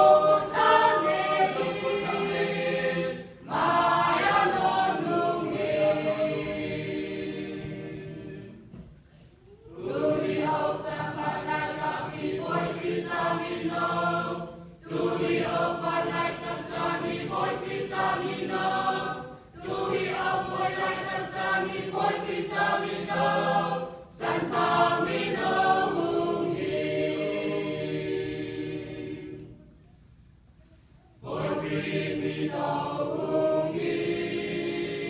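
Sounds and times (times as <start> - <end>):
mixed choir singing a hymn: 0.0 - 9.0, 9.6 - 29.8, 31.2 - 35.0.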